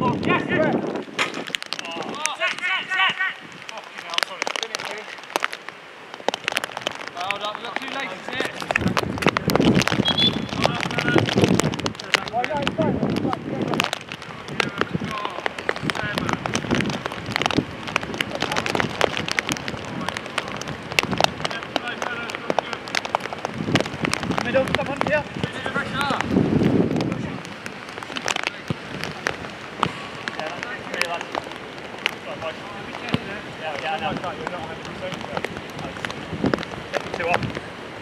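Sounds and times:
sharp taps and ticks: 0.1s - 25.4s, 26.9s - 37.6s.

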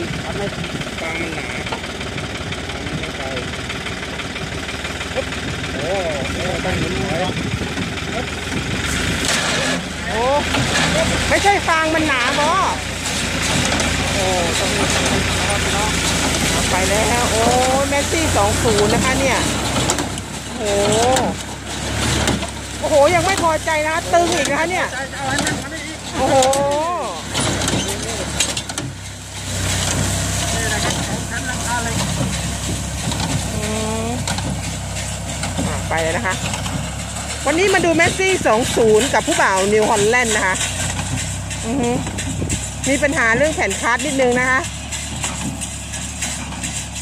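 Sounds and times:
baler mechanical drone: 0.0s - 47.0s
tractor engine running: 0.0s - 47.0s.

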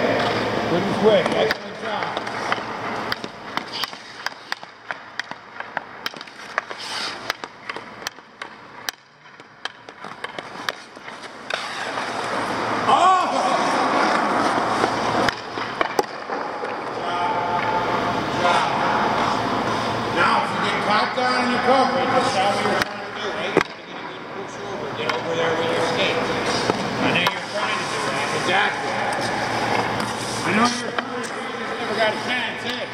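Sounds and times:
hockey stick clicking on puck: 1.2s - 12.6s, 13.9s - 17.0s
skate blades scraping ice: 1.2s - 17.0s, 25.5s - 32.8s.

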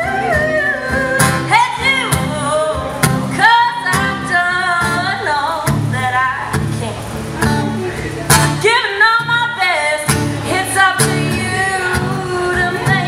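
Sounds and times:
strummed acoustic guitar: 0.0s - 13.0s
woman singing: 0.0s - 13.0s.

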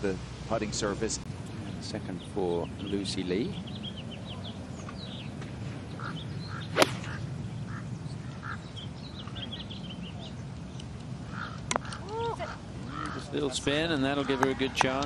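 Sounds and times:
steady outdoor hum: 0.0s - 15.0s
birds chirping: 1.3s - 15.0s
golf club striking ball: 6.7s - 7.2s.

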